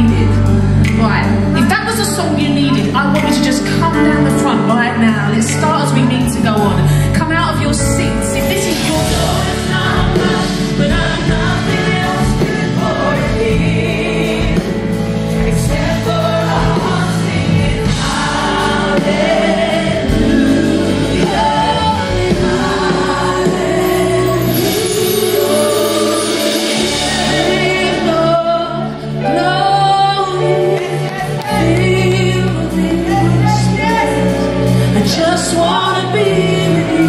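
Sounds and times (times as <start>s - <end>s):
bass guitar: 0.0s - 37.0s
keyboard: 0.0s - 37.0s
voices singing together: 8.7s - 37.0s.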